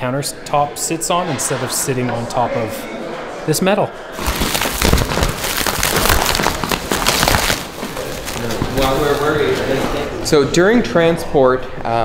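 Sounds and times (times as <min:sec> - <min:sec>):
foam packing wrap rustling: 0:04.2 - 0:09.6.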